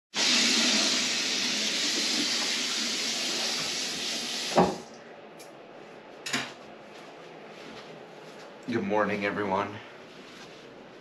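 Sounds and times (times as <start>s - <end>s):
tap water pouring into basin: 0.2s - 4.7s.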